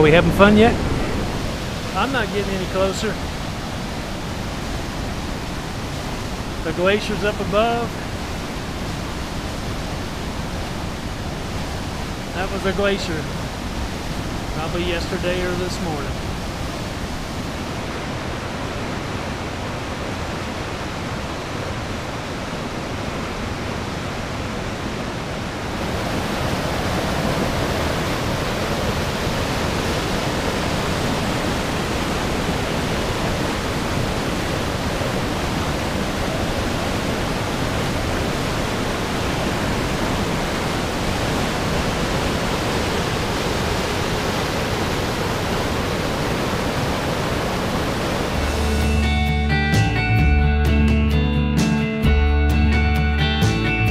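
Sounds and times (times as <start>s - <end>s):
whitewater rushing: 0.0s - 49.6s.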